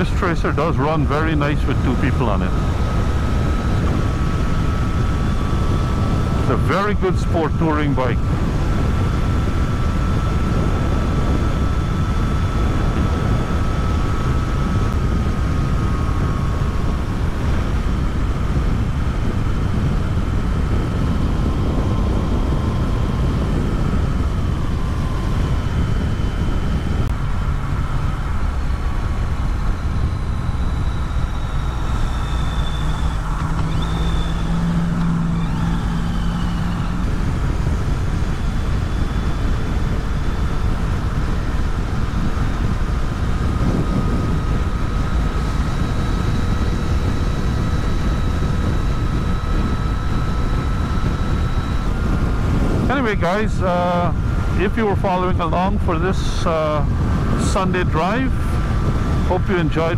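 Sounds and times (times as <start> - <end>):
motorcycle engine: 0.0 - 20.7, 21.3 - 47.9
wind and road noise: 0.0 - 59.9.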